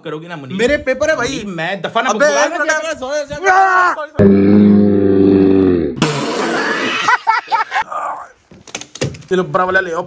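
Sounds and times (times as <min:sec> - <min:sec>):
man belching low: 0:04.2 - 0:07.0.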